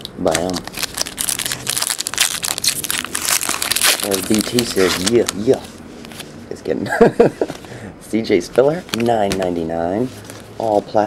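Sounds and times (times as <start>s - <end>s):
plastic wrapper crinkling: 0.0s - 6.3s, 8.6s - 11.0s.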